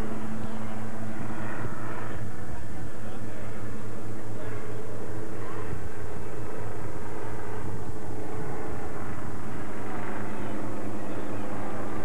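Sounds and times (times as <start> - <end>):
faint voices: 0.0 - 12.0
low hum and rumble: 0.0 - 12.0.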